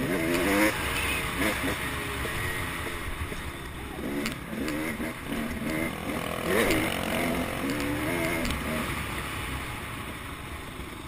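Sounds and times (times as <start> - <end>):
motocross bike engine revving: 0.0 - 9.7.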